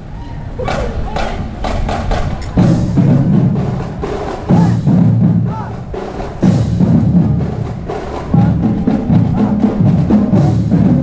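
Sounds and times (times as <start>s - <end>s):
marching drum line: 0.6s - 11.0s.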